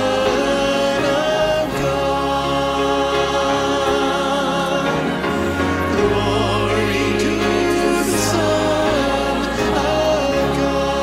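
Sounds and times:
choir singing worship song: 0.0s - 11.0s
man singing lead: 0.0s - 11.0s
orchestra: 0.0s - 11.0s
piano: 0.0s - 11.0s.

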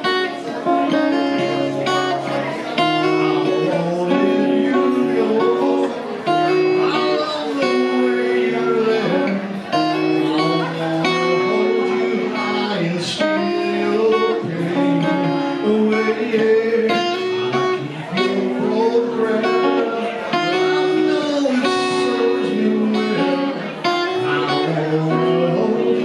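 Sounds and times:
electric guitar strummed chords: 0.0s - 26.0s.

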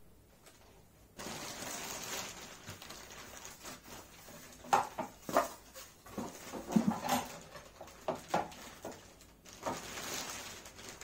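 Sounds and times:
plastic sheet crinkling: 0.4s - 11.0s.

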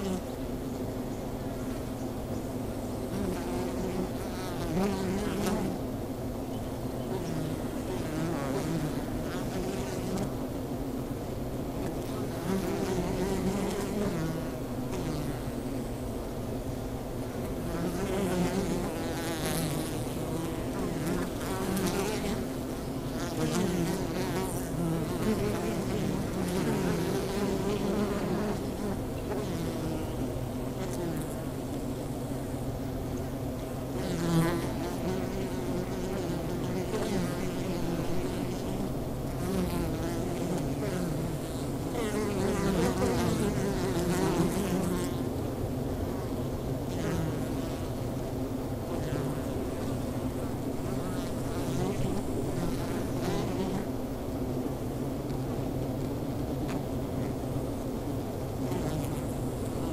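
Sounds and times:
bees buzzing: 2.6s - 11.0s, 11.7s - 45.3s, 46.1s - 55.2s.

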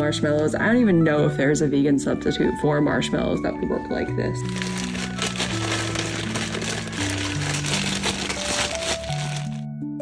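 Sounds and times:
background music: 0.0s - 10.0s
plastic bag crinkling: 4.4s - 9.7s.

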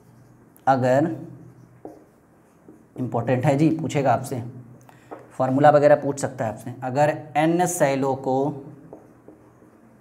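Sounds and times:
marker writing on a whiteboard: 0.0s - 3.9s, 8.1s - 10.0s.

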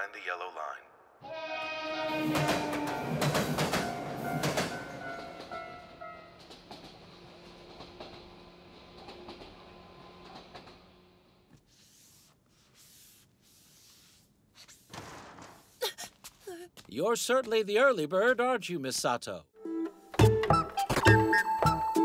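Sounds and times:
train running hum: 2.0s - 11.3s
train wheels clacking: 2.3s - 10.9s.

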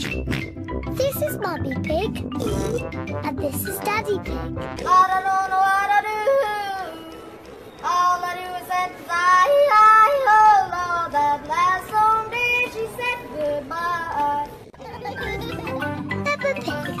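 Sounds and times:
instrumental music with bass line: 0.0s - 5.0s
boy yodeling: 4.9s - 7.1s.

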